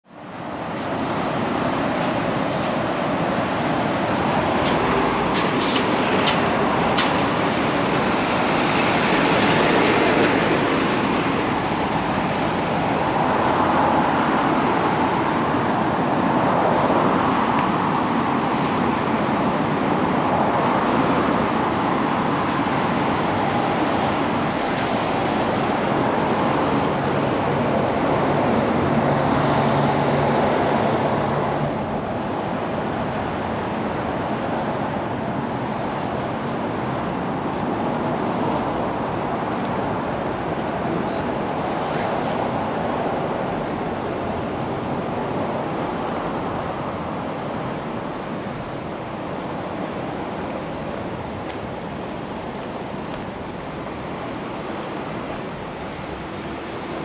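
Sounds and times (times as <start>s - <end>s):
road traffic roar: 0.0s - 57.0s.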